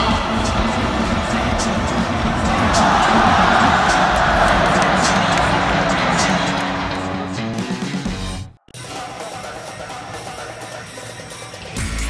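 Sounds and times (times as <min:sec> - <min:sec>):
stadium crowd cheering: 0:00.0 - 0:08.2
music: 0:00.0 - 0:12.0.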